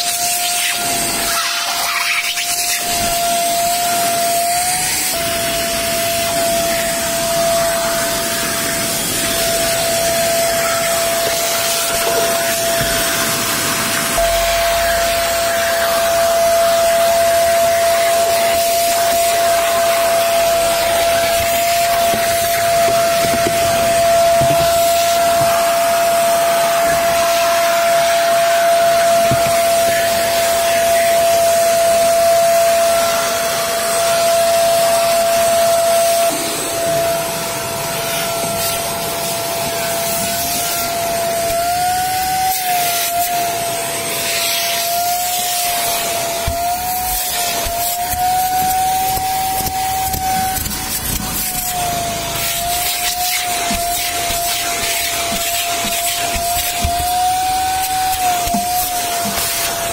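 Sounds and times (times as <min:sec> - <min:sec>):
vacuum cleaner whine: 0:00.0 - 0:59.9.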